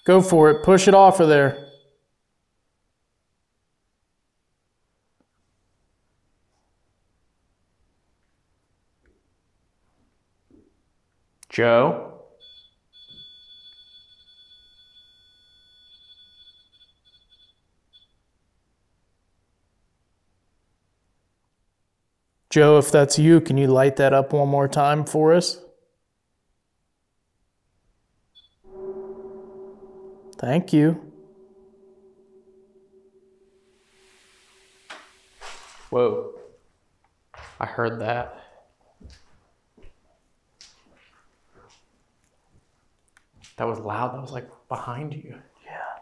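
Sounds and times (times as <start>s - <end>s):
high electronic alert tone: 0.0s - 1.8s, 28.6s - 34.9s
low steady drone: 28.6s - 35.4s.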